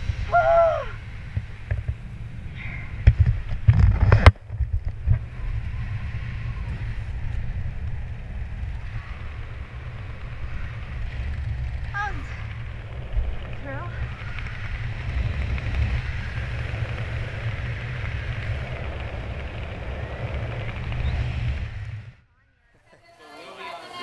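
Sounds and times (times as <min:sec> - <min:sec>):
wind buffeting microphone: 0:00.0 - 0:22.2.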